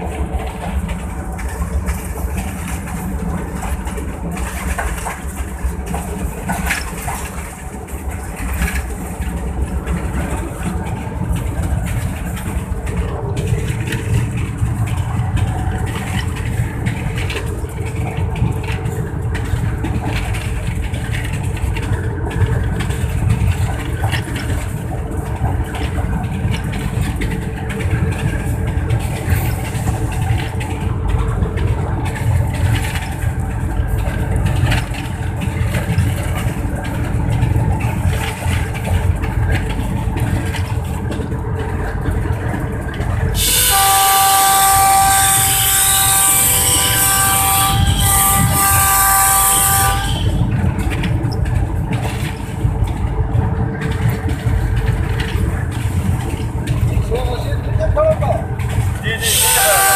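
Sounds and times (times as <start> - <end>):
locomotive engine and wheels rumbling: 0.0 - 59.9
locomotive air horn blast: 43.4 - 50.5, 59.2 - 59.9.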